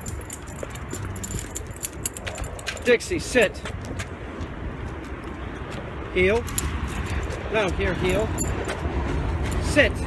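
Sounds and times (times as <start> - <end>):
handheld camera movement: 0.0 - 3.0
dog chain collar jingling: 0.0 - 3.5, 8.1 - 8.8
footsteps rumble: 0.0 - 10.0.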